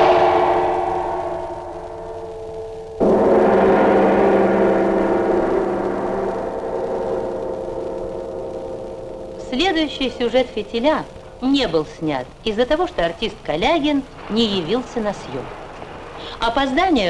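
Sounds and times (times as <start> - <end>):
deep metallic chime: 0.0 - 14.3.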